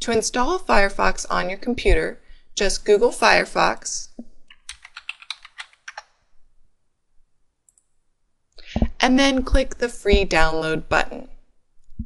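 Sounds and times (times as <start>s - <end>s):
computer keyboard typing: 4.5s - 6.1s.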